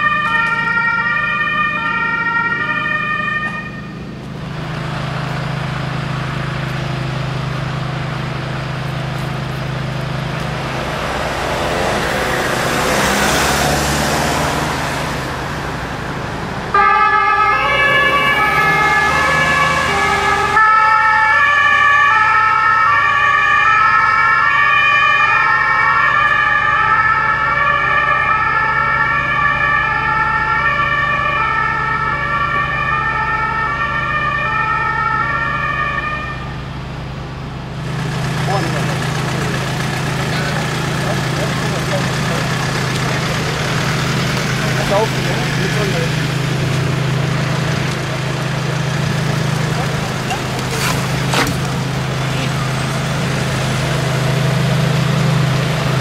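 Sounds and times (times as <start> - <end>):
two-tone emergency siren: 0.0 - 4.1, 16.7 - 36.8
vehicle engine and road noise: 0.0 - 56.0.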